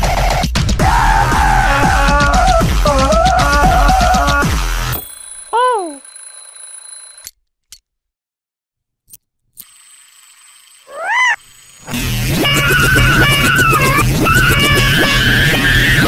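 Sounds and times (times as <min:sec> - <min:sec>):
music: 0:00.0 - 0:04.9, 0:11.9 - 0:16.0
cartoon swoop sound effects: 0:10.9 - 0:11.4.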